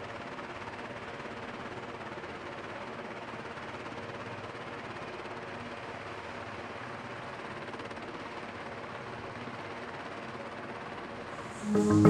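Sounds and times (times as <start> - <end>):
helicopter rotors and engines: 0.0 - 11.6.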